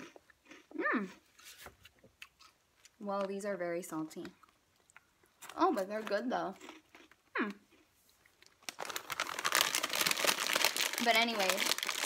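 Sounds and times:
plastic packaging crackling: 8.4 - 12.0.

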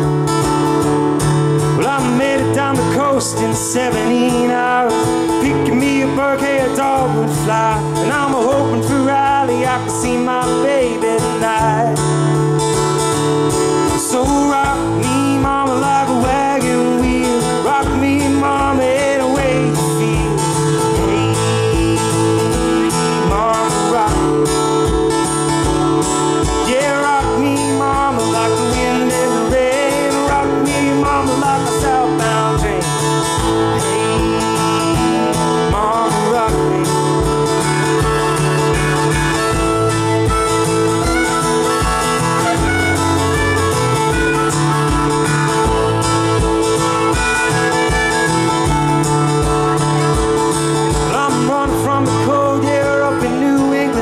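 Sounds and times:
acoustic guitar strumming: 0.0 - 54.0
bending melody line: 0.0 - 54.0.

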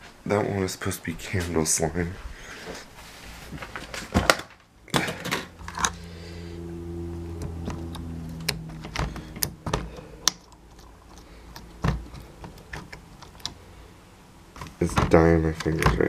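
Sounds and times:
low steady hum: 0.1 - 16.0.

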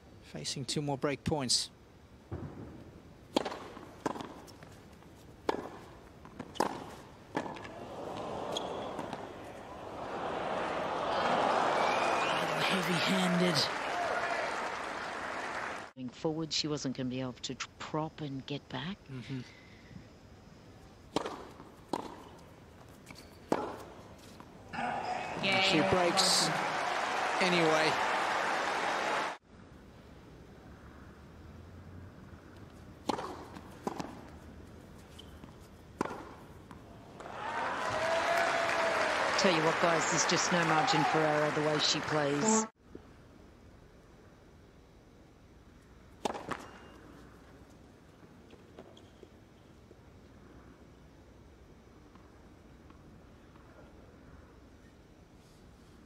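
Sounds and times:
racket striking tennis ball: 3.3 - 4.5, 5.4 - 7.8, 21.1 - 22.4, 23.5 - 23.9, 33.0 - 34.3, 36.0 - 36.4, 46.2 - 46.9
arena hush: 24.7 - 28.1.

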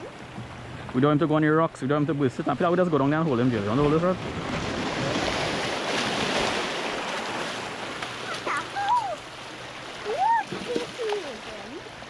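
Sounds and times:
waves splashing over rocks: 0.0 - 12.0.

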